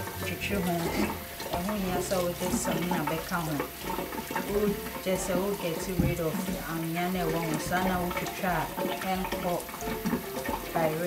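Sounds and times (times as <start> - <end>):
person speaking: 0.0 - 3.8, 4.4 - 9.8, 10.7 - 11.0
sponge scrubbing: 0.0 - 11.0
tap water running into sink: 0.0 - 11.0.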